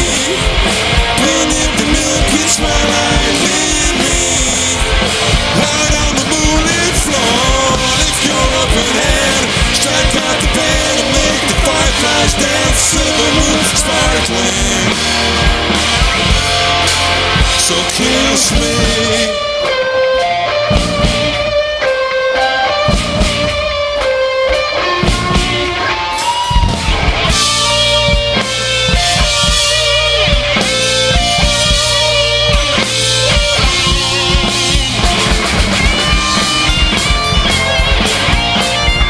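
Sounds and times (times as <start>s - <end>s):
live rock band playing: 0.0s - 39.0s.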